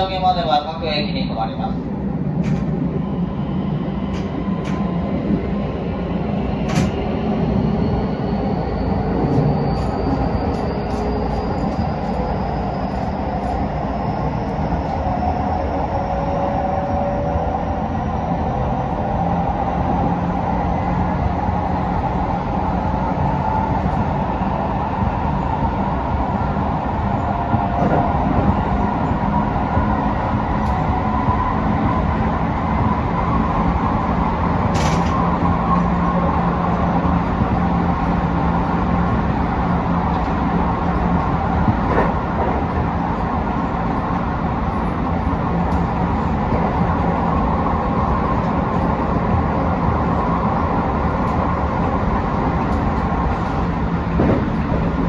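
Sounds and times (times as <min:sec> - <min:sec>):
train wheels on rails: 0:01.6 - 0:55.0.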